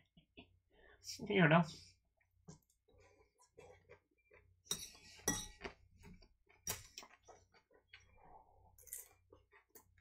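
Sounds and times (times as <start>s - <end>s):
cutlery clinking against a bowl: 4.7s - 5.7s.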